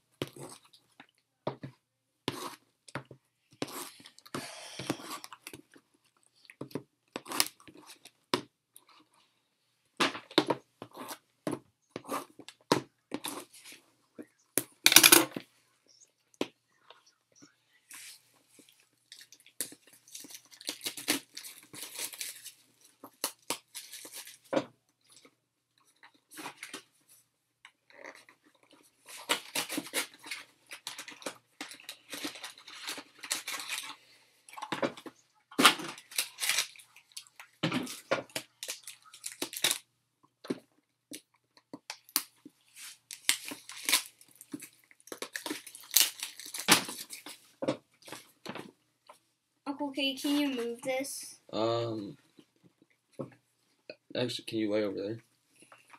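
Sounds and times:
foil wrappers crinkling and tearing: 19.1 - 24.5, 29.1 - 34.0, 35.6 - 39.8, 42.8 - 47.4.

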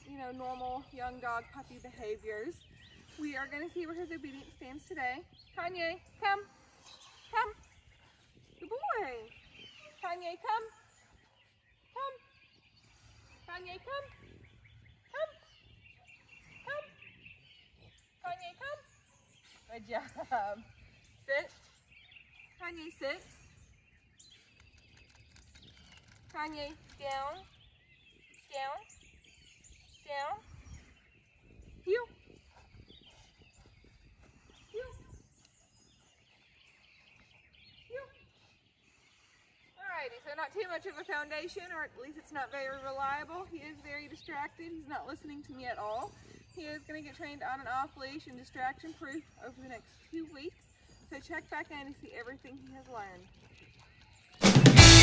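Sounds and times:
faint outdoor background noise: 0.0 - 55.0
woman giving commands: 34.7 - 35.0.

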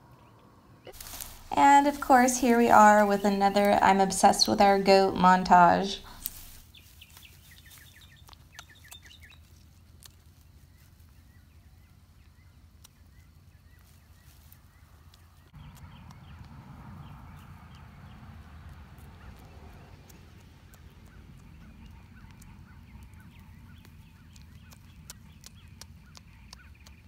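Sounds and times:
outdoor background: 0.0 - 27.0
small birds chirping: 0.2 - 27.0
goat munching and tearing grass: 0.9 - 27.0.

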